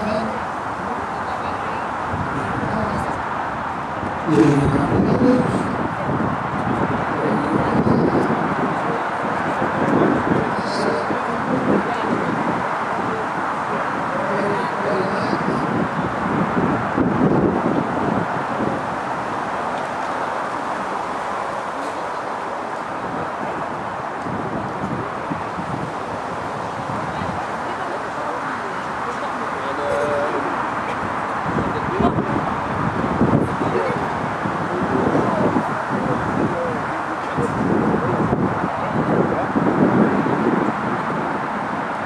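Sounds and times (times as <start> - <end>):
people talking indistinctly: 0.0 - 41.6
outdoor background noise: 0.0 - 42.0.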